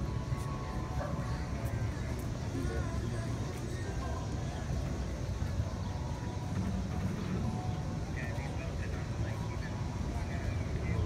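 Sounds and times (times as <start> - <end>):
faint chatter of passers-by: 0.0 - 11.0
low traffic rumble: 0.0 - 11.0.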